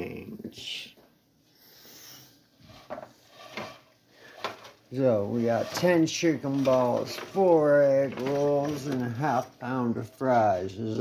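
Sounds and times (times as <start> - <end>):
faint kitchen handling sounds: 2.6 - 10.2.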